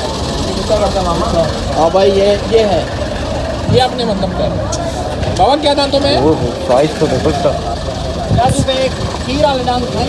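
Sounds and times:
men talking: 0:00.5 - 0:10.0.

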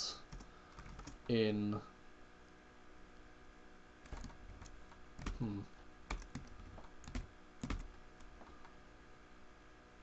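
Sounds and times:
keyboard key presses: 0:00.3 - 0:01.3, 0:04.0 - 0:08.8
person humming: 0:05.3 - 0:05.8.

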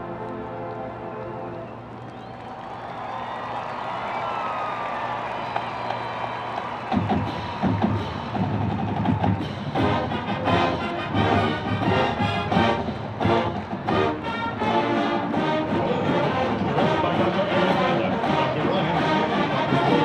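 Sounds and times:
marching band playing: 0:05.0 - 0:20.0.

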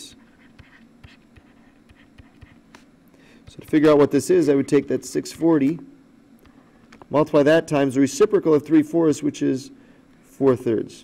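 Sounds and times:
faint steady hum: 0:00.0 - 0:11.0
stylus ticking and scratching: 0:00.2 - 0:04.0.

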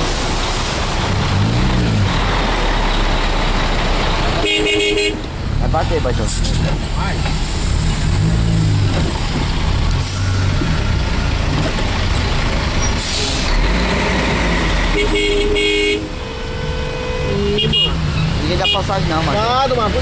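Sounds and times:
car horns honking: 0:04.4 - 0:05.4, 0:14.6 - 0:19.9.

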